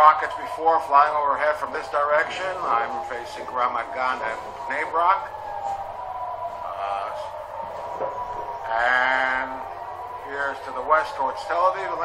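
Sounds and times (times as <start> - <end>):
air raid siren steady tone: 0.0 - 12.0.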